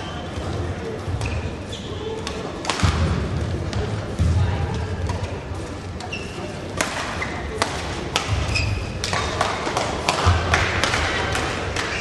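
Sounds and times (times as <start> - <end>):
shoe squeaks: 1.2 - 2.2, 6.0 - 6.5, 8.3 - 9.0
racket hitting shuttlecock: 2.2 - 3.2, 6.8 - 12.0.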